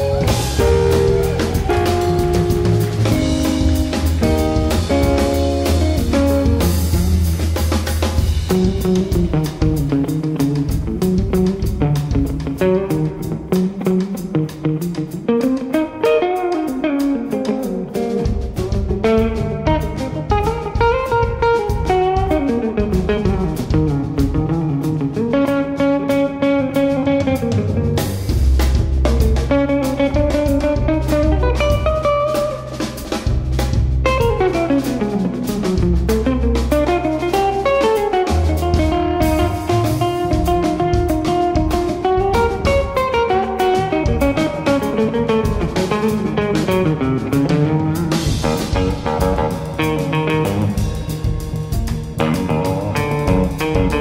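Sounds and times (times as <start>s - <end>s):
electric guitar solo: 0.0s - 7.4s, 8.5s - 28.3s, 29.0s - 33.3s, 34.0s - 54.0s
bass: 0.0s - 54.0s
drums: 0.0s - 54.0s.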